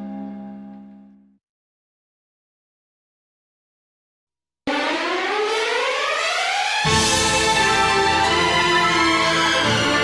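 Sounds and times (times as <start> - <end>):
film song with rising sustained tone: 4.7 - 10.0.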